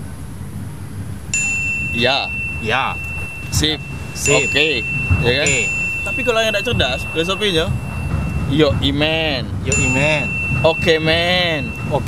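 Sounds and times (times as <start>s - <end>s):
low background rumble: 0.0s - 12.0s
high ding: 1.4s - 12.0s.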